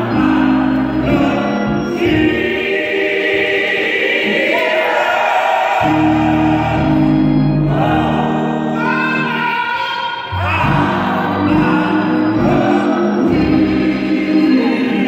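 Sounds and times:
church organ: 0.0 - 5.0, 5.8 - 15.0
gospel choir singing: 0.0 - 15.0.

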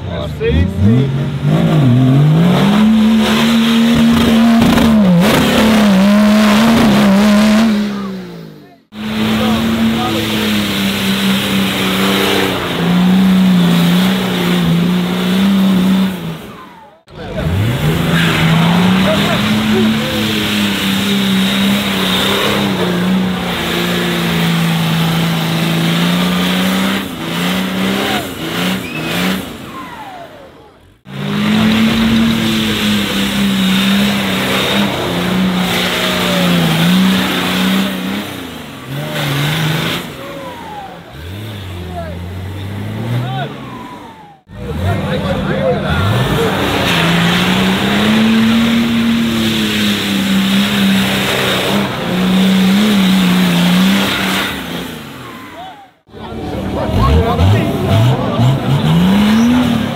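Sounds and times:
off-road truck engine revving: 0.0 - 59.9
crowd voices and shouts: 39.9 - 49.2, 55.2 - 59.9.

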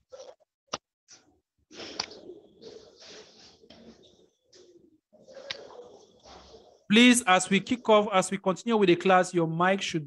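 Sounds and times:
choppy microphone background noise: 0.0 - 10.0.

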